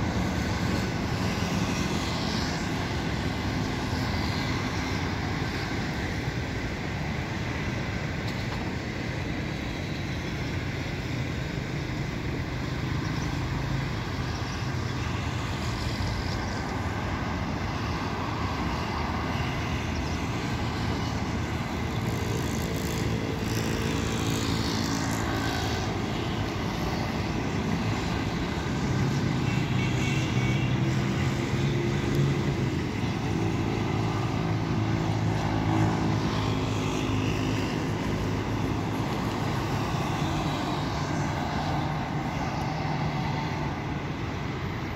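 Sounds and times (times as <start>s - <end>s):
vehicle engines droning: 0.0s - 44.9s.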